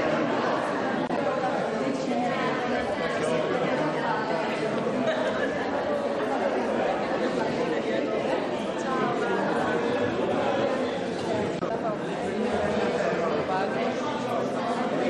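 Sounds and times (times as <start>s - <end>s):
crowd chatter: 0.0s - 15.0s.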